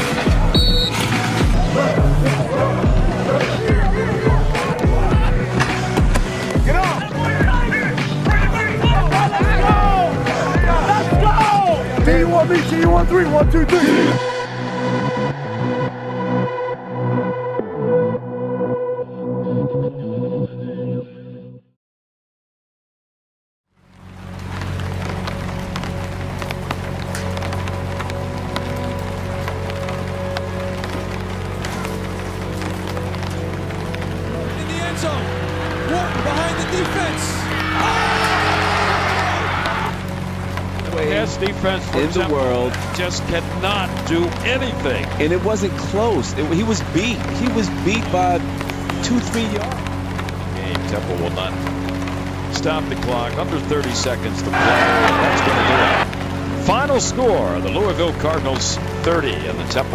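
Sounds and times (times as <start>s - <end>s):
rain patter: 0.0s - 14.6s, 23.7s - 59.9s
bass line: 0.0s - 21.6s, 54.5s - 56.2s
low music drone: 23.9s - 41.3s.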